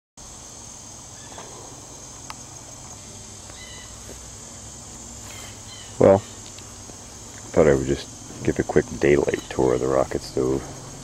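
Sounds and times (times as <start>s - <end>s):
high-pitched insect chorus: 0.2s - 11.0s.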